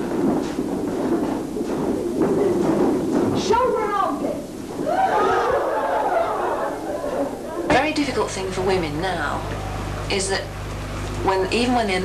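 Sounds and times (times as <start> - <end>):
low steady hum: 0.0 - 12.0
many voices chattering: 3.6 - 10.3
person speaking: 7.6 - 10.5.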